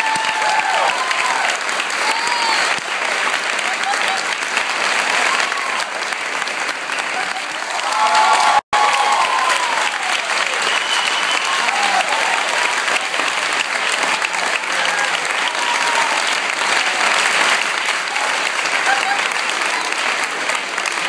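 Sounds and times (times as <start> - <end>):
people clapping: 0.0 - 21.0.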